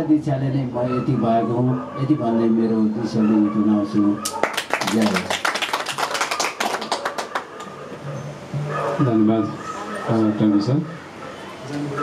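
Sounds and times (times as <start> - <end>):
people clapping: 4.2 - 7.8.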